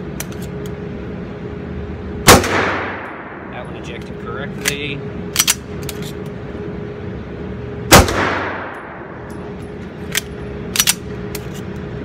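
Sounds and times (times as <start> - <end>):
pistol shot with echo: 2.3 - 3.5, 7.9 - 9.0.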